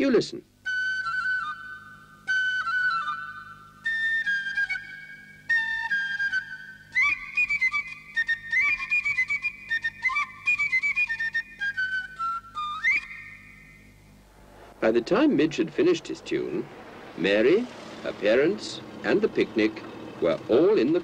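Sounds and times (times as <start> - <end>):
flute playing a high tune: 0.6 - 14.2.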